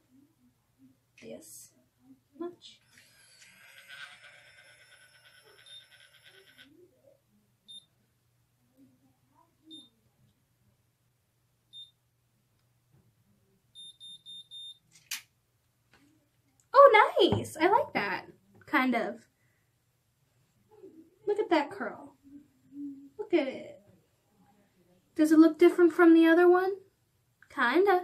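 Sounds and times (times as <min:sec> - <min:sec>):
hair curler motor whirring: 0:02.8 - 0:06.4
high beeps: 0:13.8 - 0:14.8.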